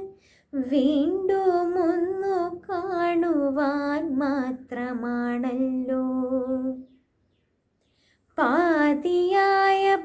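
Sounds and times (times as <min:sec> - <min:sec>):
woman singing unaccompanied: 0:00.0 - 0:07.0, 0:08.4 - 0:10.0.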